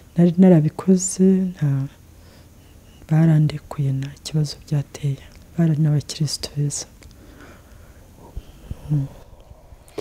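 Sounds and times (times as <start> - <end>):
woman talking: 0.2 - 2.0, 3.1 - 7.0.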